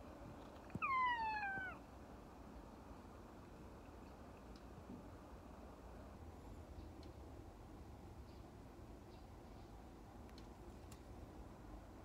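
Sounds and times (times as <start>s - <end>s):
cat meowing: 0.7s - 1.8s.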